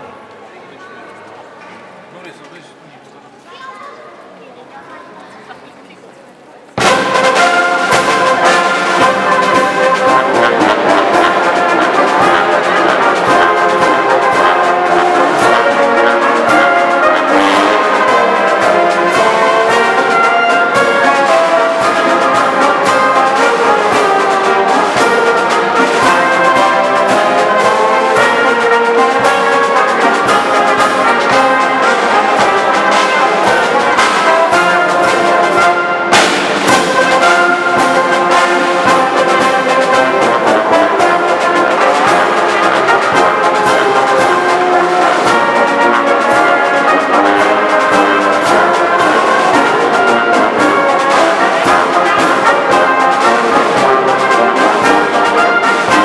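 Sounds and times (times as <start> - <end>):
brass band playing a march: 6.8 - 56.0.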